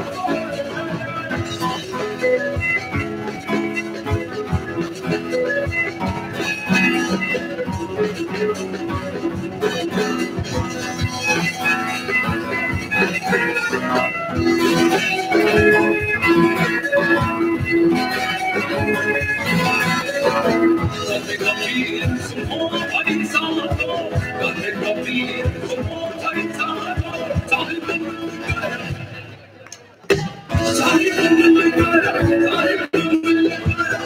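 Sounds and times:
electric and acoustic guitars: 0.0 - 29.4, 30.1 - 34.0
drum kit beat: 0.1 - 29.1, 30.1 - 34.0.

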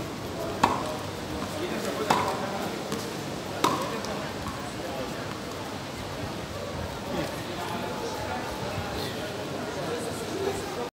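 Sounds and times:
chatter of passers-by: 0.0 - 10.9
tennis ball struck by racket: 0.6 - 4.6.

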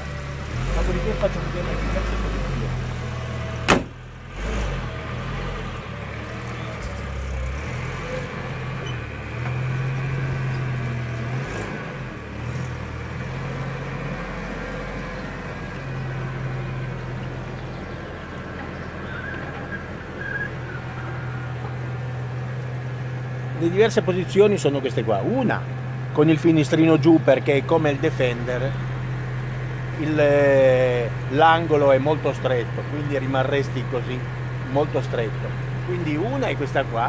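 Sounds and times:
van engine idling: 0.0 - 37.0
van door slamming: 3.6 - 4.0.

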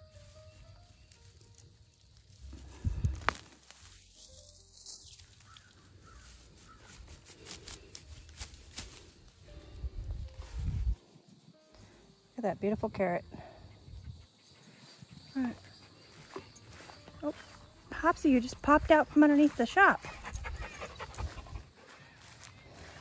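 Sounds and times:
rustling and crackling of leaves: 0.0 - 12.1, 21.2 - 23.0.

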